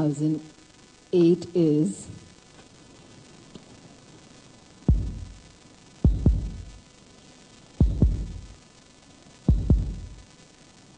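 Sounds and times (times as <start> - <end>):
deep heartbeat thumps: 4.9 - 6.8, 7.8 - 8.6, 9.5 - 10.2.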